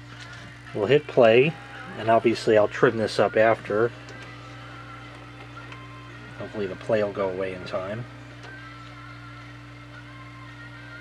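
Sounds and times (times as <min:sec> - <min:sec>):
faint wavering high whine: 0:00.0 - 0:11.0
steady low hum: 0:00.0 - 0:11.0.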